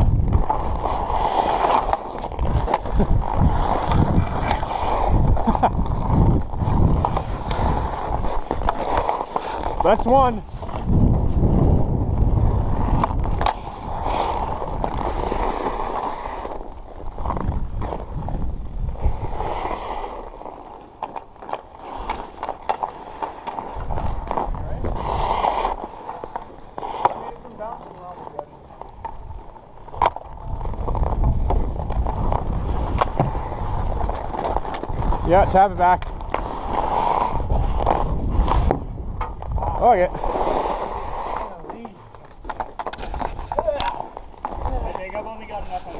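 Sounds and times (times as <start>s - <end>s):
wind rumble on microphone: 0.0s - 20.3s, 23.7s - 25.8s, 29.0s - 45.9s
skate blades scraping ice: 0.0s - 45.9s
hockey sticks hitting puck: 0.3s - 11.6s, 12.4s - 18.2s, 19.0s - 45.9s.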